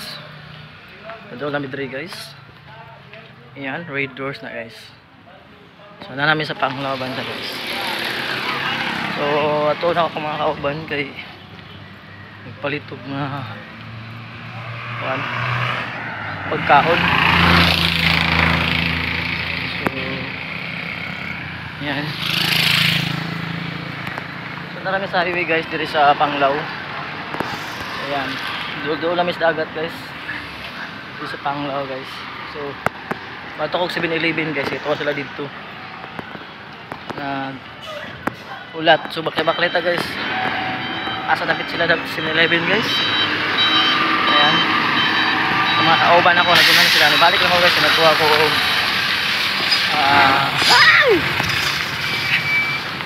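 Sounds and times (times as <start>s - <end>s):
vehicles passing close by: 0.0s - 53.0s
two-tone electronic beeping: 38.9s - 48.9s, 52.0s - 53.0s.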